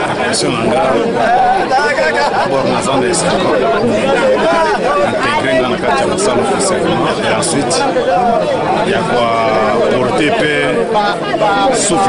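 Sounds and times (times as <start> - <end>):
man talking: 0.0 - 12.0
people chattering: 0.0 - 12.0.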